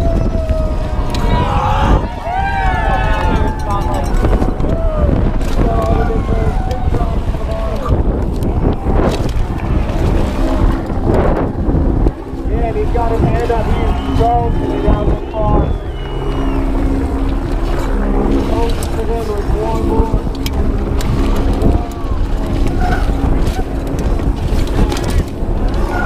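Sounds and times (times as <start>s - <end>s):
mountain bike rattling: 0.0s - 26.0s
wind buffeting microphone: 0.0s - 26.0s.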